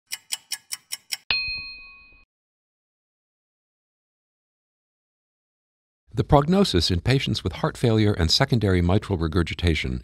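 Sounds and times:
quick clock ticks: 0:00.1 - 0:01.3
bell-like ding: 0:01.3 - 0:02.3.

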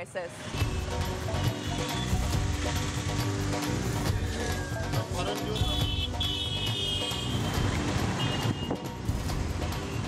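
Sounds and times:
background music: 0:00.0 - 0:10.0
city street traffic: 0:00.0 - 0:10.0
motor scooters passing: 0:01.4 - 0:04.8.

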